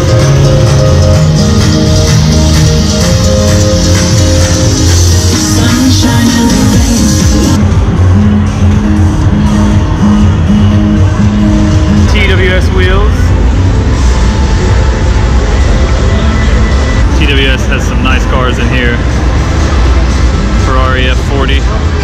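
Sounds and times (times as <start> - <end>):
bass-heavy music from speakers: 0.0 - 22.0
heavy low rumble: 0.0 - 22.0.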